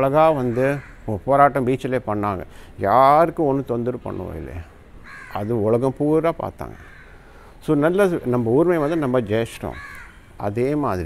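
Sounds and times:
crow cawing: 0.2s - 1.2s, 4.6s - 5.7s, 6.7s - 7.6s, 8.7s - 10.9s.

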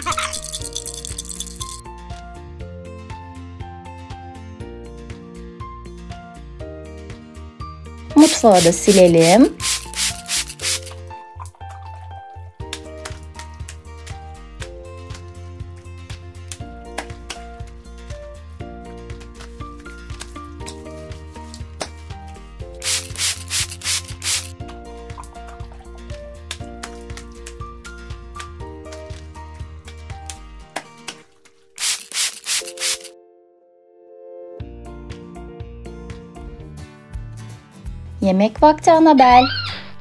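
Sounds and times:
background music with steady beat: 8.1s - 11.2s, 12.6s - 33.1s
sponge scrubbing plastic counter: 8.2s - 10.9s, 22.9s - 24.5s.

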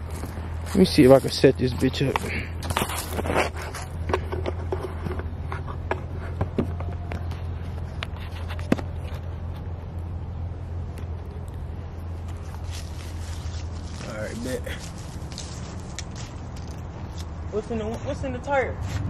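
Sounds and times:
steady low hum: 0.0s - 19.0s
camera handling scrapes and knocks: 2.0s - 9.7s.

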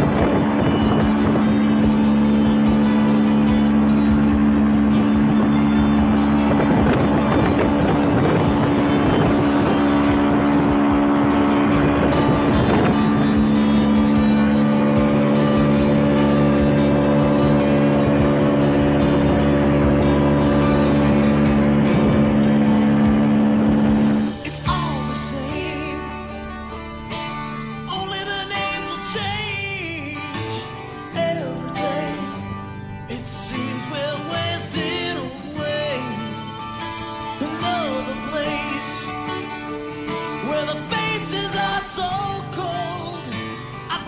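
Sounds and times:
boat motor running: 0.0s - 44.0s
music playing: 0.0s - 44.0s.

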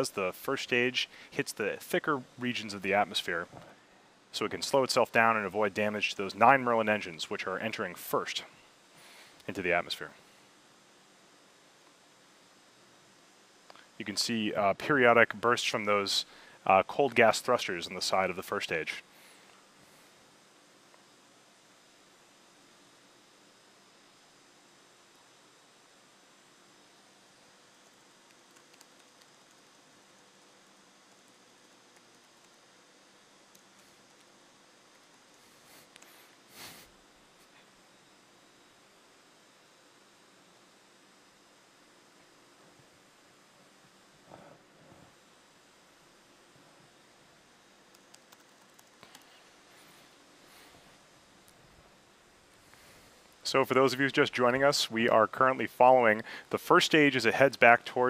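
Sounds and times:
faint steady hiss: 0.0s - 58.0s
faint ticks: 27.8s - 30.5s
faint clicks: 28.2s - 29.7s, 47.9s - 49.4s.

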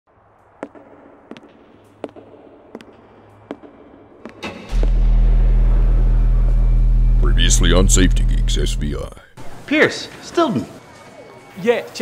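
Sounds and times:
sharp hits: 4.3s - 9.3s
loud low drone: 4.4s - 9.4s
faint hum: 4.7s - 9.6s.

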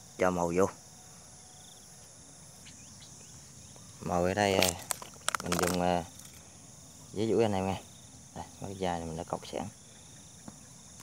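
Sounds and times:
high-pitched insect chirring: 0.0s - 11.0s.

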